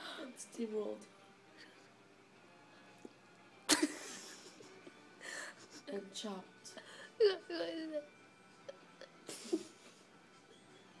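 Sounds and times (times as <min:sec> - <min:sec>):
faint tv audio: 0:00.0 - 0:11.0
stifled laugh: 0:03.7 - 0:05.9, 0:08.7 - 0:10.1.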